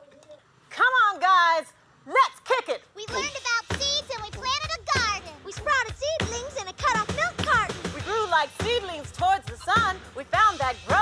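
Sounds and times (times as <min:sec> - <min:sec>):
high-pitched voice calling out: 0:03.0 - 0:07.7.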